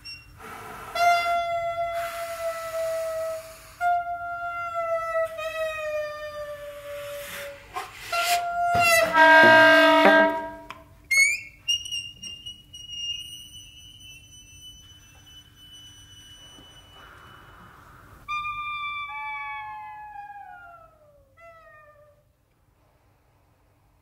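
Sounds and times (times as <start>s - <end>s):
saxophone ensemble playing: 9.0s - 10.7s.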